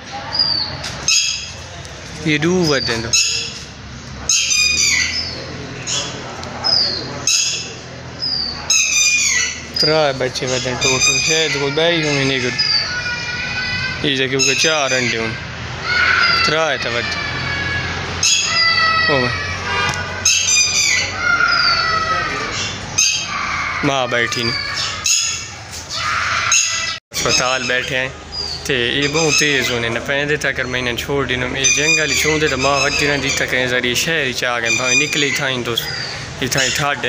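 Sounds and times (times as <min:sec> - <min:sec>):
birds squawking: 0:00.0 - 0:37.0.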